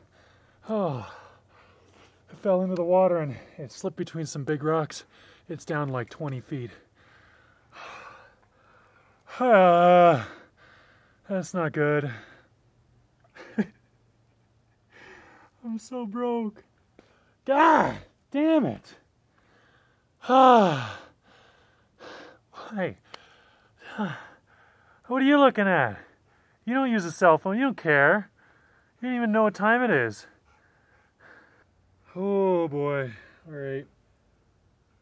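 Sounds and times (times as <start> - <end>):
man breathing heavily: 0.0 - 2.3, 5.0 - 5.5, 6.6 - 11.3, 12.0 - 12.7, 14.8 - 15.6, 19.2 - 25.1, 25.9 - 26.7, 28.3 - 29.0, 30.2 - 32.2, 33.1 - 33.5.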